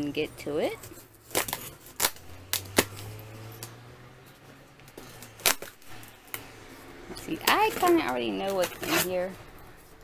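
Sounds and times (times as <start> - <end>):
tape crackling: 0.6 - 10.0
packing tape ripping: 0.9 - 3.8, 4.9 - 6.5.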